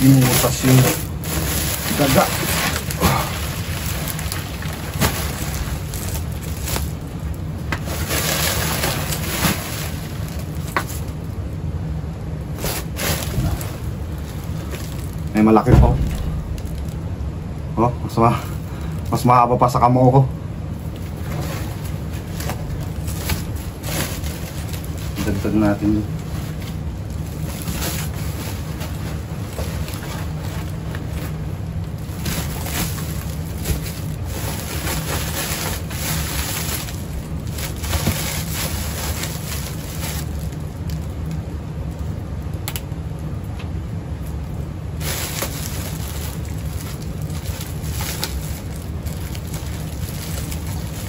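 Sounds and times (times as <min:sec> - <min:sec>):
sharp crackle: 0:00.0 - 0:11.2, 0:12.5 - 0:17.2, 0:45.0 - 0:51.0
plastic sack rustling: 0:00.0 - 0:11.4, 0:12.4 - 0:19.7, 0:20.7 - 0:41.3, 0:44.8 - 0:51.0
steady low rumble and hiss: 0:00.0 - 0:51.0.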